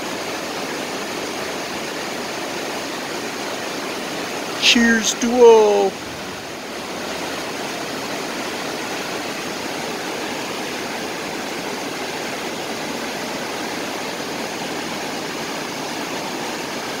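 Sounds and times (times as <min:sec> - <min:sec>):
whitewater rapids rushing: 0:00.0 - 0:17.0.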